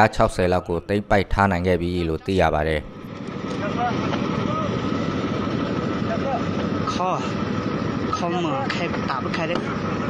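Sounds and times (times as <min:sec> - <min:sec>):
person speaking: 0:00.0 - 0:03.0
steady rumbling: 0:00.0 - 0:10.0.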